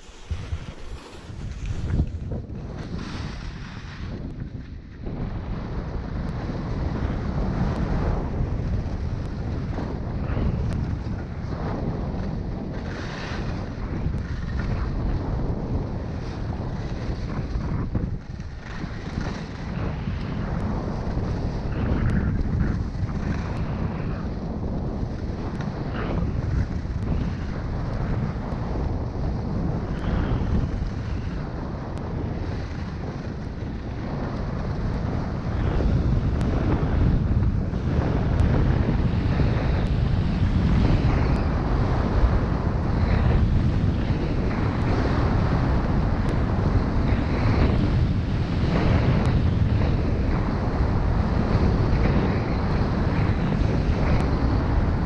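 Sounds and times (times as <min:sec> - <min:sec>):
skis swishing across snow: 0:00.0 - 0:04.2
wind rushing over microphone: 0:00.0 - 0:55.0.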